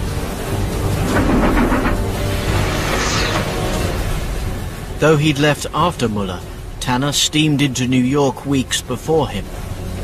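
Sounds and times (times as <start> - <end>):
deep rumbling noise: 0.0 - 5.8.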